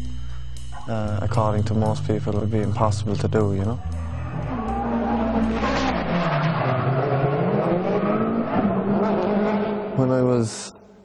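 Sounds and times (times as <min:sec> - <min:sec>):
car engine at high revs: 0:04.0 - 0:10.0.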